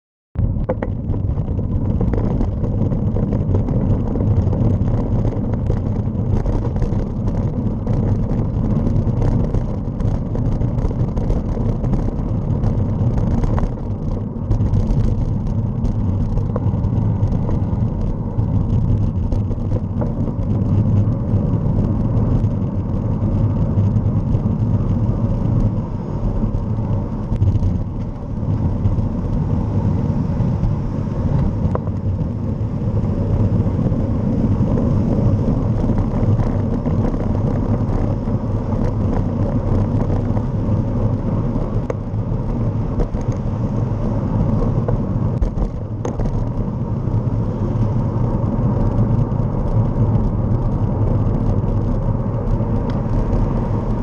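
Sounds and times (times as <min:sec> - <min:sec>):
road noise: 0:00.4 - 0:54.0
wind on microphone: 0:00.4 - 0:54.0.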